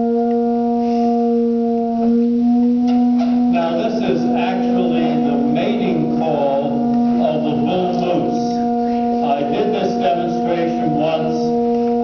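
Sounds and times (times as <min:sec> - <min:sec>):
organ pipe low tone: 0:00.0 - 0:12.0.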